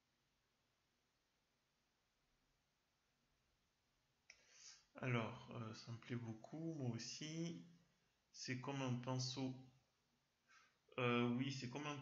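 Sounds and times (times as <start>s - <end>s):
short breath: 4.3s - 4.9s, 10.4s - 10.8s
person speaking: 4.6s - 9.7s, 10.9s - 12.0s.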